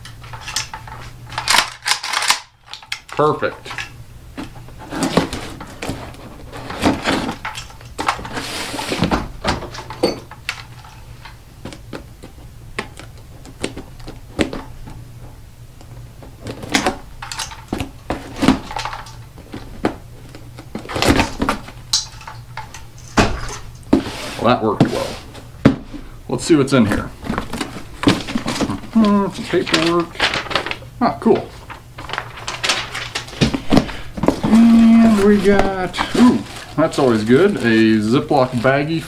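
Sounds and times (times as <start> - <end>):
cardboard box scrapes and rustles: 8.3 - 9.1, 23.9 - 25.4.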